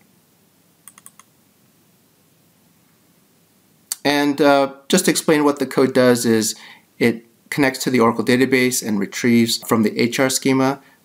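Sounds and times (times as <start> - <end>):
computer mouse clicks: 0.8 - 1.3.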